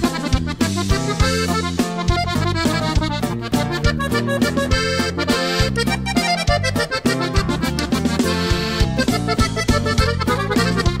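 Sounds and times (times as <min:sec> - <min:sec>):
accordion-led folk music: 0:00.0 - 0:11.0
rhythmic bass: 0:00.0 - 0:11.0.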